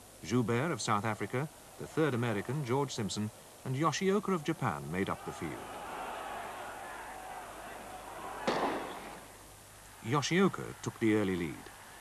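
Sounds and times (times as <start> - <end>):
starter's pistol crack: 8.5 - 9.2.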